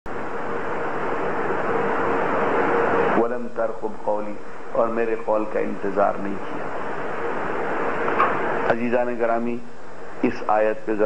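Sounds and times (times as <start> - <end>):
analog recording hiss and hum: 0.1 - 11.0.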